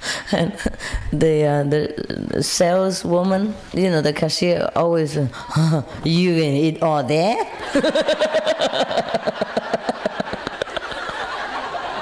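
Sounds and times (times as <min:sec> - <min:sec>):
audience laughing: 0:07.6 - 0:12.0
woman laughing: 0:07.6 - 0:12.0.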